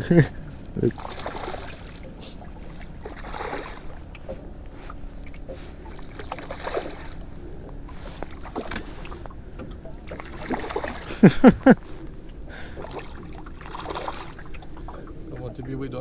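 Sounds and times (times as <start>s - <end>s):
water lapping against boat hull: 0.0s - 16.0s.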